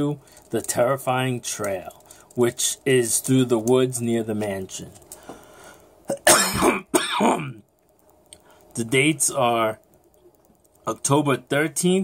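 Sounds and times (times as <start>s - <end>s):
man coughing: 6.1s - 7.6s.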